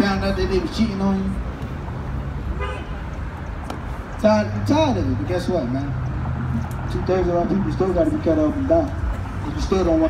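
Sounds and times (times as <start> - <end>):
road traffic rumbling: 0.0 - 10.0
car horn toot: 2.6 - 3.0.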